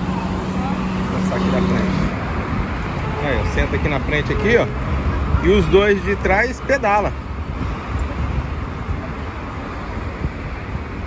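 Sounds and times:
road traffic hum: 0.0 - 11.0
wind rumble on microphone: 1.7 - 11.0.

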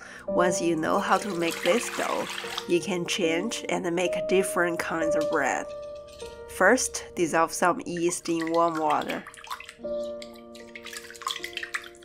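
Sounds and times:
background music with held notes: 0.0 - 12.0
spatula stirring water in bowl: 1.0 - 12.0.

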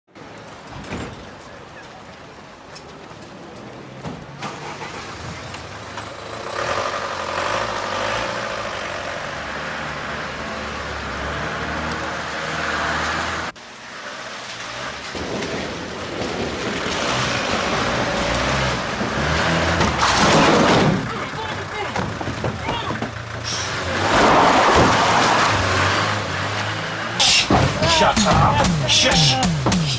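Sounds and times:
van engine driving off: 3.7 - 29.9.

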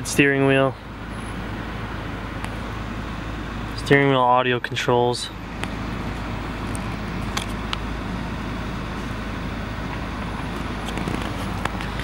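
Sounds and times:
car idling inside cabin: 0.0 - 12.0.

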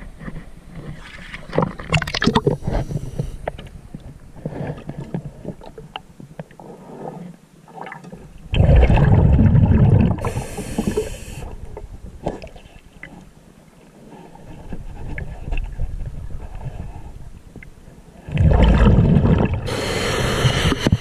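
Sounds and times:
water noise: 0.0 - 21.0
rush of bubbles: 8.5 - 11.1, 18.3 - 20.9.

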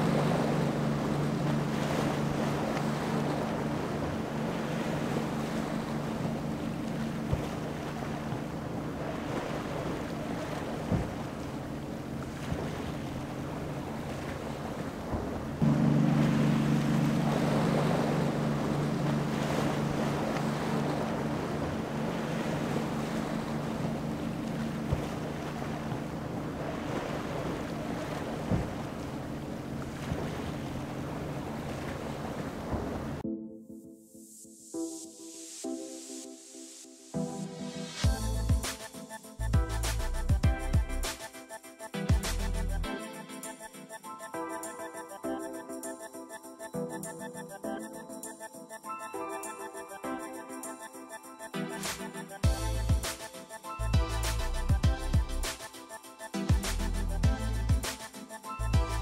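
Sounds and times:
powerboat engines droning: 0.0 - 33.2
rushing water: 0.0 - 33.2, 51.6 - 59.0.

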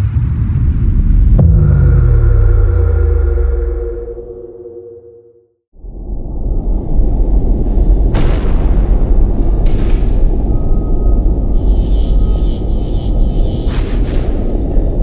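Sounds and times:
low rumble: 0.0 - 5.2, 5.8 - 13.4
deep impact hit: 1.2 - 4.1
falling low tone and ringing: 1.2 - 8.1, 9.0 - 13.5.

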